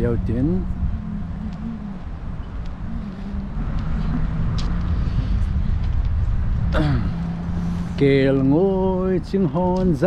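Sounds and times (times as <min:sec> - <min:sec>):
car engine and road rumble: 0:00.0 - 0:10.0.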